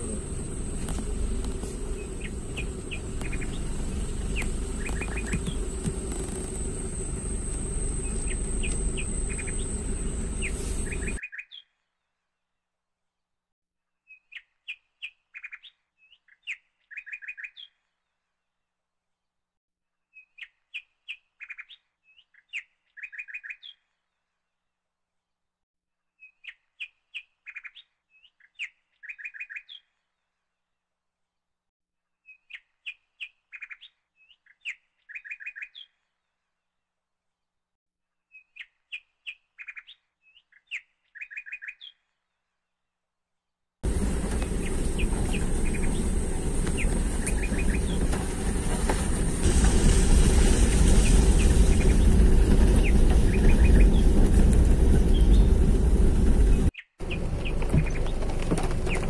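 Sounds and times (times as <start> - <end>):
bird chirps and trills: 1.8 - 11.7, 44.5 - 48.1, 52.8 - 54.2.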